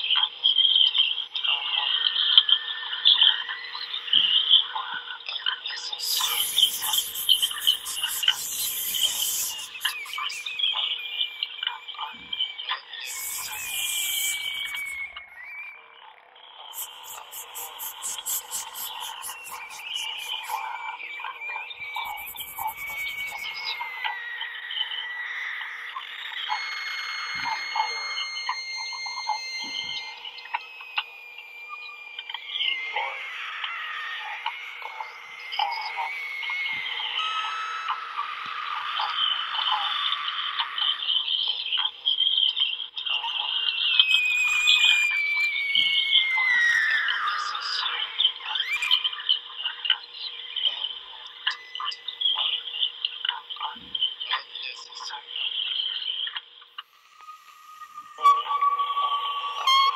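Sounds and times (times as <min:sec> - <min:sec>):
voice squeaks and whistle-like tones: 0:01.9 - 0:49.9, 0:50.6 - 0:55.2, 0:56.8 - 0:59.9
croaking rasping voice: 0:06.0 - 0:11.0, 0:16.8 - 0:20.6.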